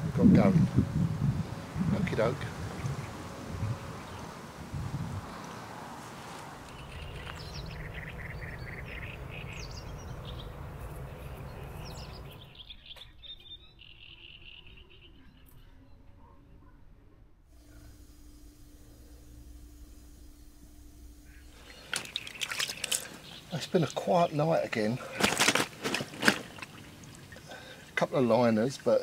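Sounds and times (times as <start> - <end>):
faint steady hum: 0.0 - 12.5, 17.5 - 29.0
birds chirping: 0.0 - 16.1, 20.0 - 29.0
short rustles or knocks: 25.0 - 27.2.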